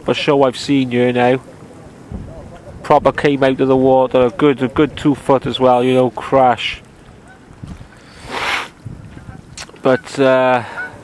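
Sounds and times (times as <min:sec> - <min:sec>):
small waves lapping: 0:00.0 - 0:11.0
wind over water: 0:00.0 - 0:11.0
short breathy hiss: 0:07.8 - 0:08.8.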